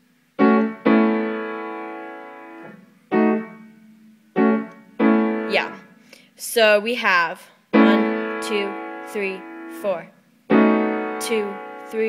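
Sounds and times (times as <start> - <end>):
piano chords: 0.0 - 6.0, 7.8 - 12.0.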